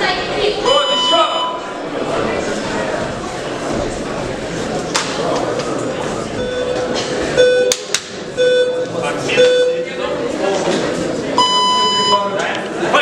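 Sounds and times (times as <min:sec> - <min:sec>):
murmur of crowd talking: 0:00.0 - 0:13.0
electronic timer beeps: 0:00.7 - 0:01.6, 0:08.4 - 0:08.8, 0:11.4 - 0:12.2.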